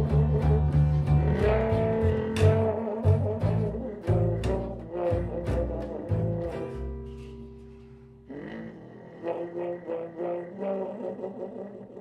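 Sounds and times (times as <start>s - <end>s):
deep bass: 0.0s - 9.5s
slide trombone playing jazz: 0.0s - 12.0s.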